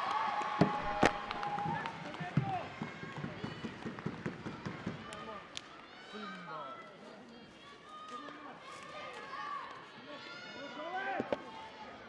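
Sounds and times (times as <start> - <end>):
voices shouting and calling out: 4.6 - 12.0.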